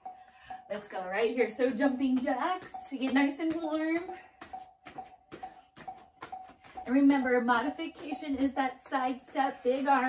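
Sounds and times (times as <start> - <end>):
feet thumping on floor: 0.0 - 10.0.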